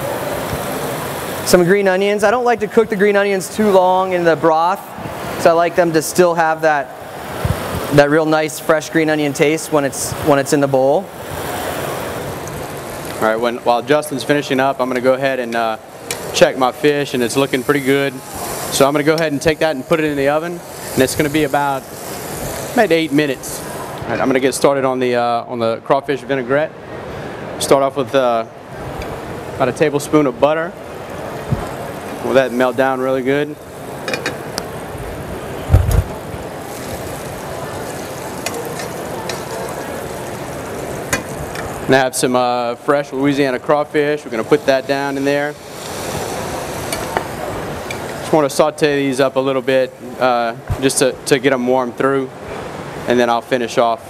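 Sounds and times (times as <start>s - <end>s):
seafood sizzling in pans: 0.0s - 1.8s, 3.0s - 24.0s, 30.8s - 51.4s
low thump: 35.7s - 36.2s
tongs stirring: 36.7s - 41.8s.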